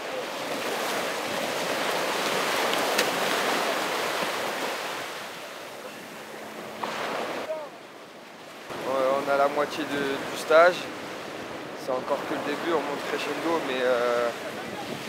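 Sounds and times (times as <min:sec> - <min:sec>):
people splashing in water: 0:00.0 - 0:05.4
sea waves breaking: 0:00.0 - 0:15.0.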